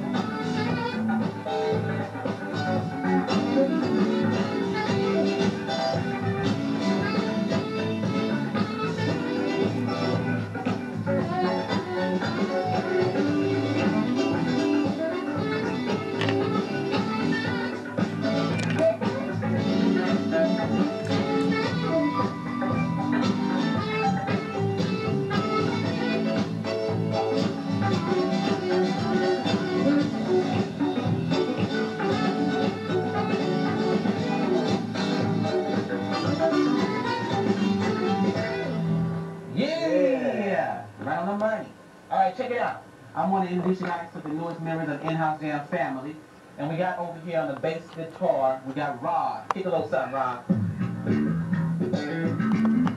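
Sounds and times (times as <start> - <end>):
saxophone: 0.0 - 39.6, 50.5 - 52.9
electric guitar: 0.0 - 40.0, 50.4 - 52.9
bass guitar: 0.0 - 41.1, 50.4 - 52.9
keyboards: 0.0 - 52.9.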